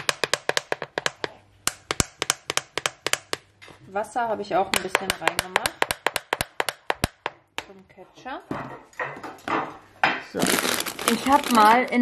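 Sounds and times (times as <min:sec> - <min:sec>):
plastic spice shaker rattling: 0:10.4 - 0:12.0.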